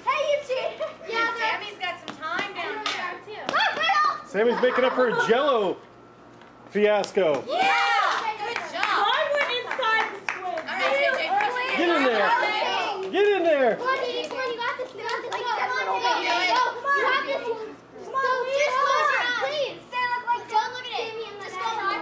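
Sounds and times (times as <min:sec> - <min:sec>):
children talking and calling out: 0:00.0 - 0:05.5, 0:07.5 - 0:22.0.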